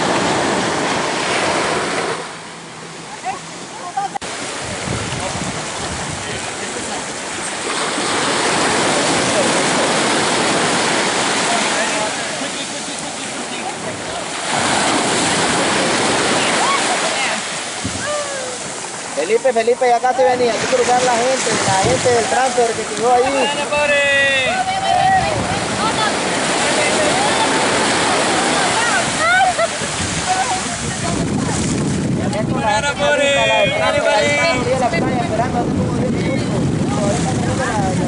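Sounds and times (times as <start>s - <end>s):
waves breaking on beach: 0.0s - 38.0s.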